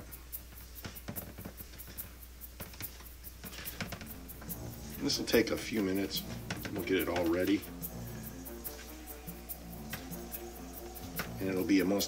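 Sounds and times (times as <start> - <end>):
hands rubbing flour in a bowl: 0.0 - 12.0
quiet music: 0.0 - 12.0.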